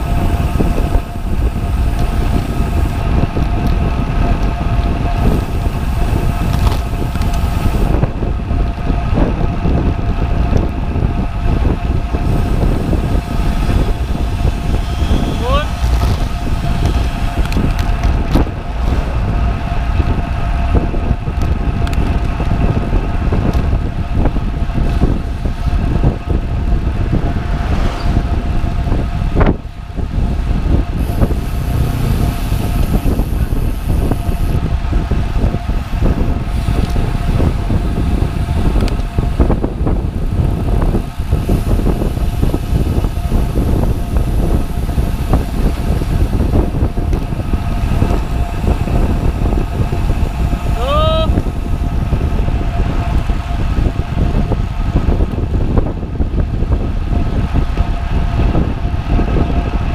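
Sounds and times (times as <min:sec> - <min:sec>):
tyre and road noise: 0:00.0 - 0:59.9
wind over microphone: 0:00.0 - 0:59.9
faint steady whine: 0:10.3 - 0:23.1.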